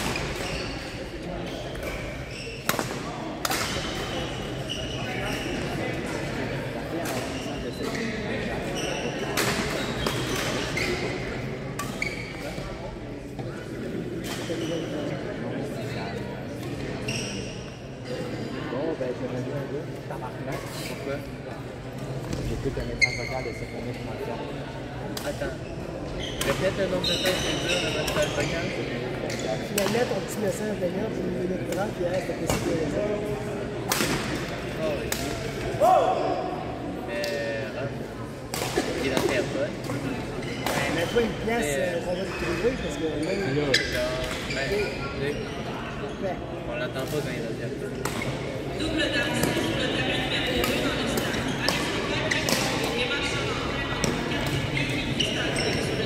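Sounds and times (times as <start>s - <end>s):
sneaker squeaks on court floor: 0.0s - 6.2s, 7.0s - 12.9s, 14.2s - 15.2s, 16.7s - 18.5s, 22.3s - 24.2s, 25.2s - 30.6s, 38.8s - 48.6s, 49.3s - 56.0s
players' voices: 0.0s - 56.0s.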